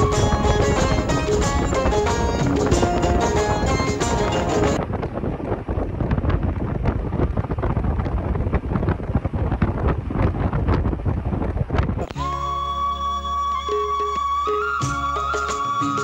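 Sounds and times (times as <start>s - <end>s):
music with held high note: 0.0s - 4.8s, 12.0s - 16.0s
wind buffeting microphone: 0.0s - 12.9s
car rumbling: 0.0s - 14.1s.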